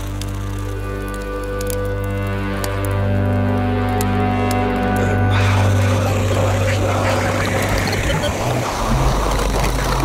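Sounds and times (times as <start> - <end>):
grainy electronic noise texture: 0.0 - 10.0
low bass drone: 0.0 - 10.0.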